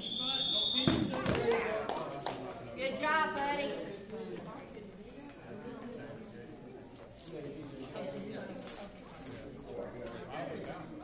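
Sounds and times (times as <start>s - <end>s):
referee whistle blast: 0.0s - 1.1s.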